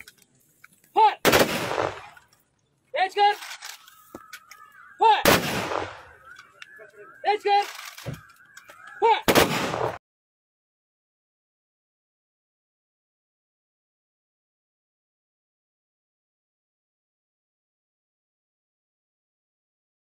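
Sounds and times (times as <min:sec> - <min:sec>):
person shouting commands: 0:00.9 - 0:01.2, 0:05.0 - 0:05.2, 0:09.0 - 0:09.3.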